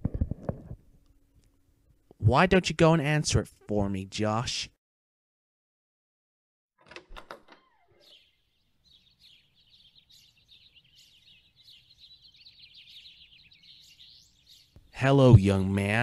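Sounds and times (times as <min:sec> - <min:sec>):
faint birds chirping: 0:07.6 - 0:16.0.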